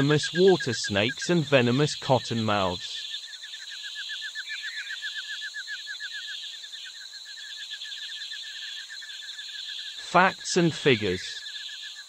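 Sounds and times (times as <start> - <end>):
rapid repeated chirps: 0.0 - 3.1, 9.7 - 11.9.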